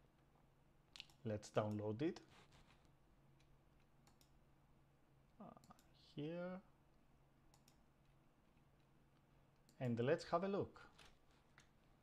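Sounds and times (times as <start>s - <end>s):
computer mouse clicks: 0.9s - 1.9s, 3.4s - 4.4s, 7.5s - 8.2s.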